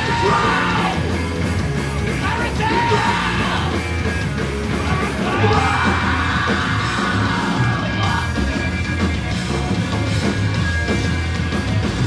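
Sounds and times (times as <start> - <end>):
vocalist yelling: 0.0 - 1.0, 2.2 - 3.8, 4.9 - 8.3
punk band playing live: 0.0 - 12.0.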